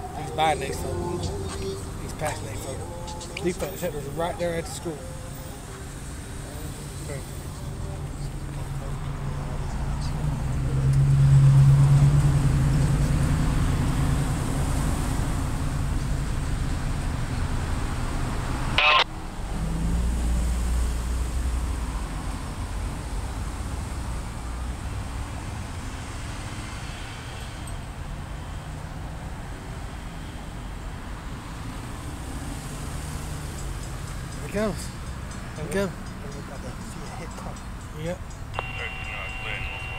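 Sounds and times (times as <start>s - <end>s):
engine rumble: 0.0s - 25.9s
traffic noise: 0.0s - 39.9s.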